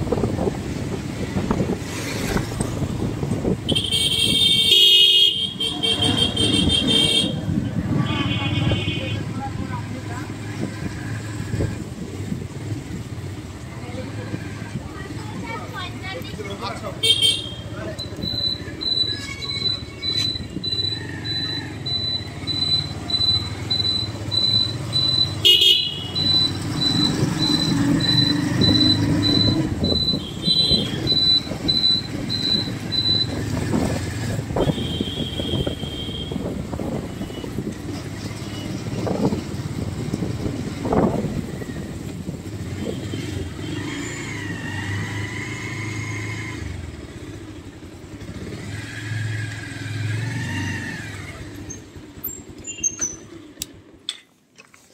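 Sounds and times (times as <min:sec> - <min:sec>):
vehicle engine and road noise: 0:00.0 - 0:54.9
high electronic beep: 0:18.0 - 0:25.4, 0:26.1 - 0:33.5.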